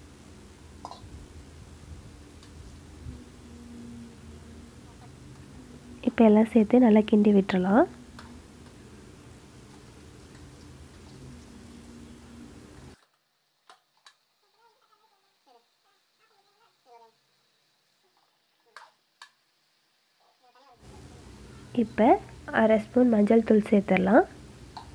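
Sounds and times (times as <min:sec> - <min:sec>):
low steady background hum: 0:00.0 - 0:24.9.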